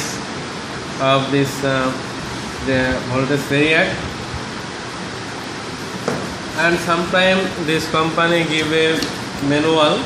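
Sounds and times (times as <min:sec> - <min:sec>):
air conditioner hiss: 0:00.0 - 0:10.0.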